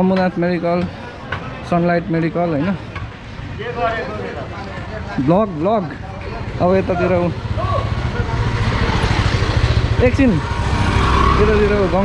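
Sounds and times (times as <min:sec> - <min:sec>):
wind and road noise: 0:00.0 - 0:12.0
motorcycle engine running: 0:06.7 - 0:12.0.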